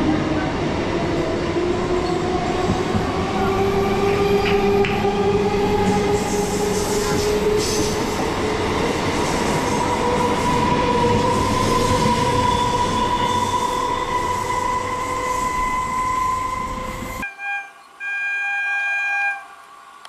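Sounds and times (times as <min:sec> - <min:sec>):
train wheels rumbling on rails: 0:00.0 - 0:17.2.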